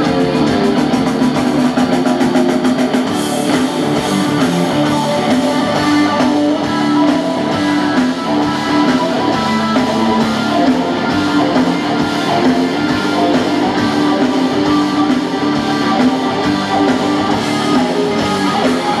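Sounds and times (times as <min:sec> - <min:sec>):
bass guitar: 0:00.0 - 0:19.0
drum kit beat: 0:00.0 - 0:19.0
electric guitars: 0:00.0 - 0:19.0.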